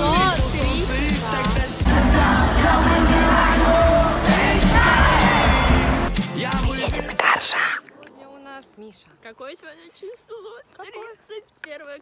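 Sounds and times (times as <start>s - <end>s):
live concert music: 0.0s - 7.2s
crowd yelling: 1.9s - 6.2s.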